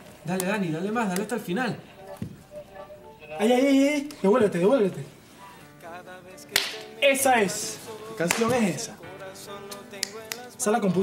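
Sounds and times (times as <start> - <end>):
portable radio playing faint singing: 0.0 - 11.0
sharp crack: 6.5 - 6.9.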